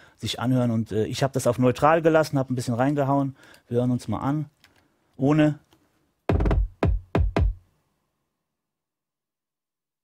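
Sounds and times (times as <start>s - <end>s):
deep punchy kick drum hits: 6.3s - 7.6s.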